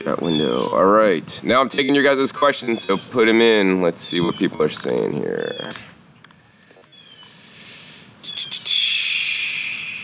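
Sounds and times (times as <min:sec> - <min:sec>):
high hiss: 0:07.2 - 0:10.0.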